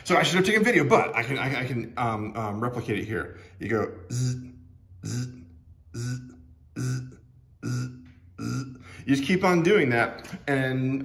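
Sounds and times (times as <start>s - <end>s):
man making buzzing sounds: 4.0s - 9.1s.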